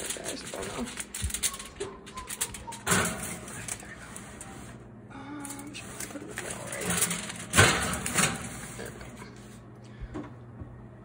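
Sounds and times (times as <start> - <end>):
oven rack and dish clattering: 0.0 - 4.8, 5.5 - 9.4.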